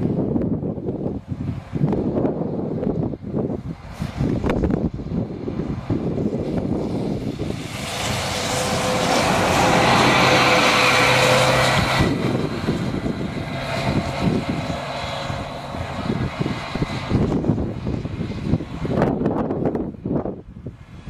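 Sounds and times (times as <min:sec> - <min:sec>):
bus diesel engine passing: 0:00.0 - 0:21.0
low rumble: 0:00.0 - 0:21.0
wind gusts on microphone: 0:00.0 - 0:21.0.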